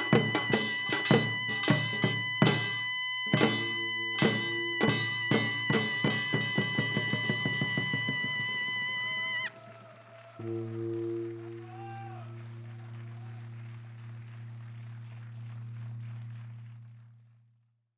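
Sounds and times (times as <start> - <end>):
drum strokes: 0.0 - 9.5
shawm holding long note: 0.0 - 17.3
faint scattered applause: 3.4 - 17.6
gong ringing low: 10.4 - 16.6.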